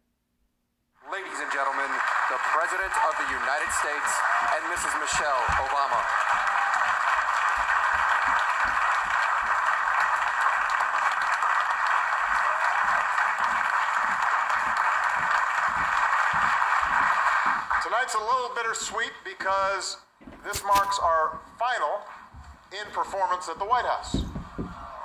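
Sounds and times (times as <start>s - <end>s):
audience applauding on television: 1.0s - 19.8s, 20.5s - 25.0s.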